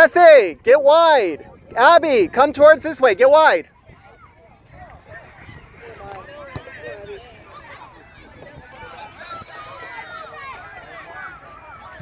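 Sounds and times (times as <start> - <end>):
distant voices shouting: 0.0 - 12.0.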